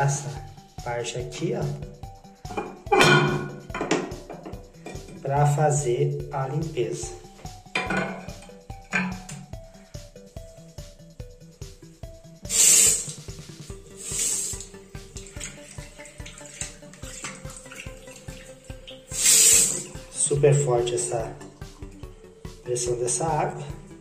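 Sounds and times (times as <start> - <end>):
soft background music: 0.0 - 24.0
water gushing into sink: 12.5 - 20.1.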